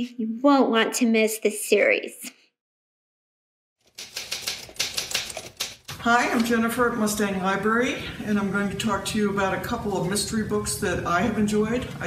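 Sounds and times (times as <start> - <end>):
manual typewriter typing: 3.8 - 6.6.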